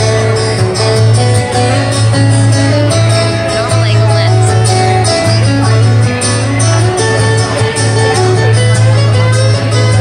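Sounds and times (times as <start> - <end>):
two acoustic guitars playing: 0.0 - 10.0.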